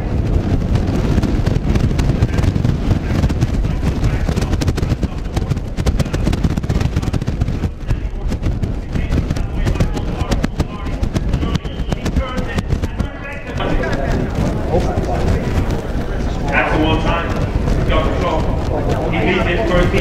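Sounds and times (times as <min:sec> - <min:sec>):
hooves galloping on turf: 0:00.0 - 0:20.0
wind on microphone: 0:00.0 - 0:20.0.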